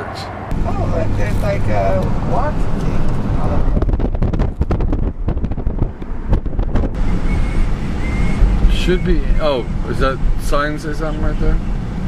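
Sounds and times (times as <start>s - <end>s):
car road and engine rumble: 0.0s - 12.0s
wind buffeting microphone: 0.5s - 10.6s.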